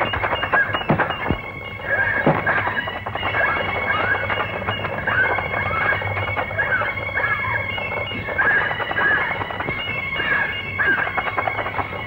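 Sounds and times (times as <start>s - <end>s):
background music: 0.0s - 12.0s
high animal-like cries: 0.5s - 12.0s.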